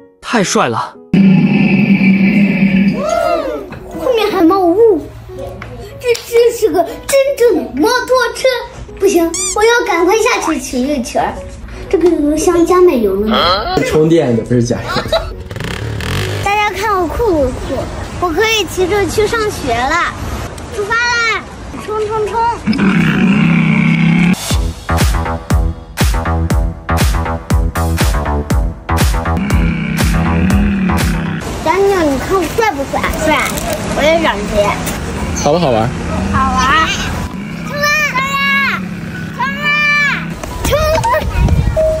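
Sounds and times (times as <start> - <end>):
girl shouting: 3.0 - 4.9, 37.7 - 38.8, 39.4 - 41.8
child voices: 3.0 - 13.9, 16.4 - 23.4, 31.6 - 35.0, 36.2 - 42.0.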